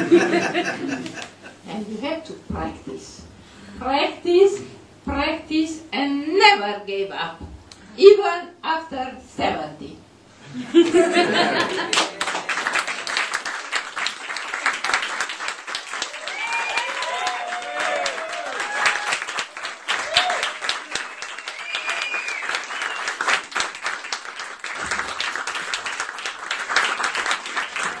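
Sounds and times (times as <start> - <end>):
audience applauding: 11.2 - 28.0.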